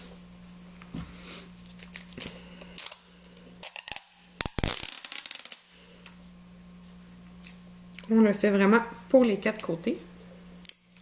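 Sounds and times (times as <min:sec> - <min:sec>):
low steady hum: 0:00.0 - 0:11.0
tape crackling: 0:01.6 - 0:05.6.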